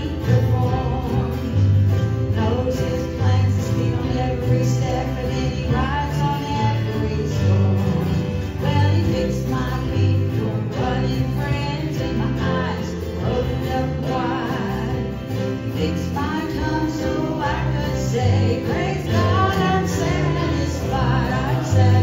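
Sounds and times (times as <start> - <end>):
acoustic guitar: 0.0 - 22.0
bass notes: 0.0 - 22.0
electric guitar: 0.0 - 22.0
person singing: 0.0 - 22.0.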